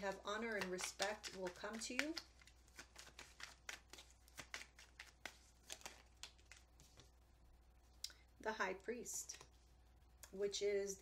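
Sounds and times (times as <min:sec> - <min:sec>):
cards being shuffled: 0:00.0 - 0:07.1.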